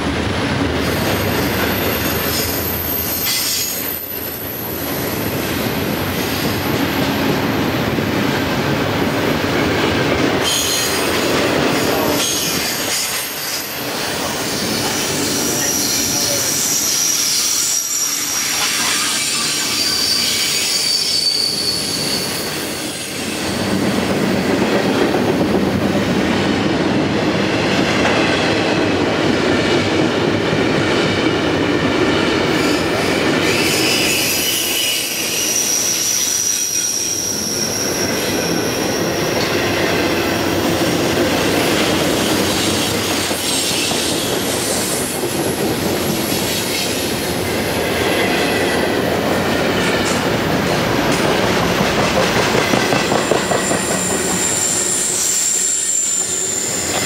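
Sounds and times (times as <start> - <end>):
steel train wheels rumbling on rail: 0.0 - 57.0
high wheel squeals: 12.1 - 23.8, 33.5 - 39.2, 53.1 - 57.0.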